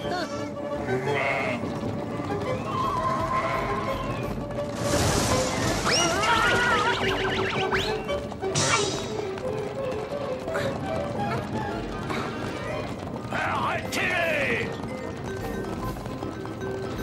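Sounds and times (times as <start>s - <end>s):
cartoon background music: 0.0s - 17.0s.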